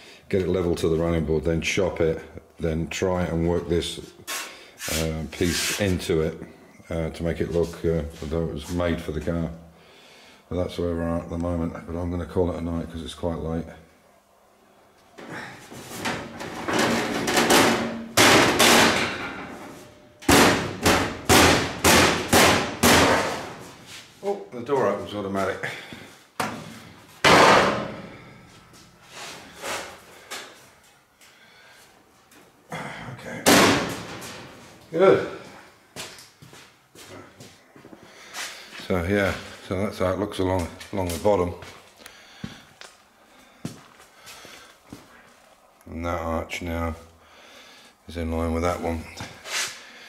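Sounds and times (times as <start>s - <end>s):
knocking on sheet metal: 16.7s - 19.4s, 20.2s - 23.6s, 27.2s - 27.9s
footsteps: 23.2s - 25.2s, 33.8s - 39.6s, 40.4s - 45.6s.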